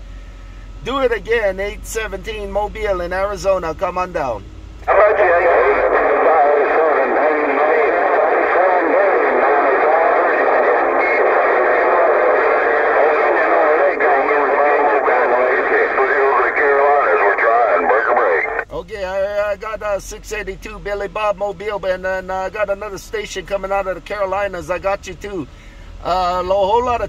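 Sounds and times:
overlapping voices on radio speaker: 0:04.8 - 0:18.7.

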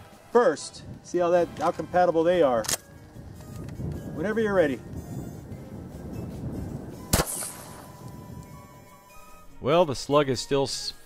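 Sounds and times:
shotgun shot: 0:07.1 - 0:07.9.

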